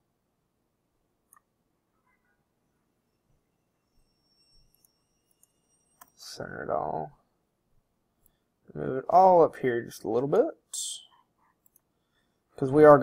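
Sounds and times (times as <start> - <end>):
computer mouse clicks: 1.3 - 1.5, 11.4 - 11.9.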